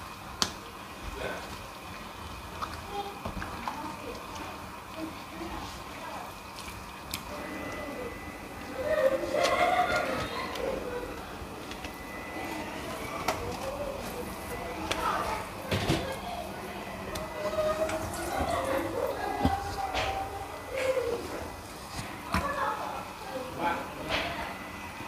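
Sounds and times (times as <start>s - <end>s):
indistinct voices talking: 7.2s - 25.0s.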